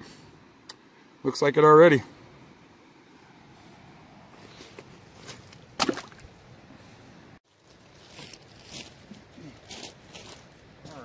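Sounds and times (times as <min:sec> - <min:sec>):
scrapes and crunches of gravel: 0:04.4 - 0:06.3, 0:07.4 - 0:11.0.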